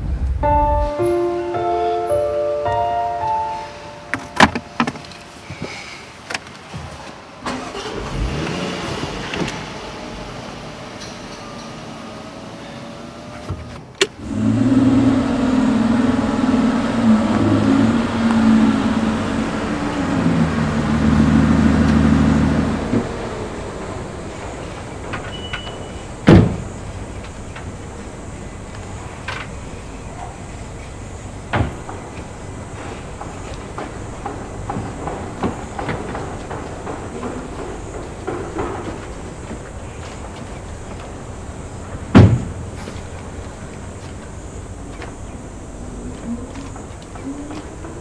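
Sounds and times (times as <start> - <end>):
car door shutting: 4.1 - 5.7
car engine running: 14.2 - 25.1.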